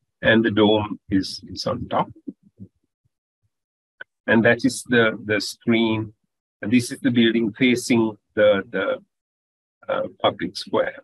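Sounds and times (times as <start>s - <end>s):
man murmuring: 0.2s - 2.3s, 4.3s - 9.0s, 9.9s - 11.0s.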